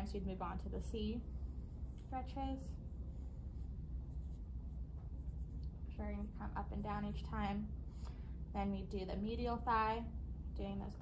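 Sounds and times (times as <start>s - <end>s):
steady low hum: 0.0s - 11.0s
hands rubbing on skin: 3.0s - 5.8s.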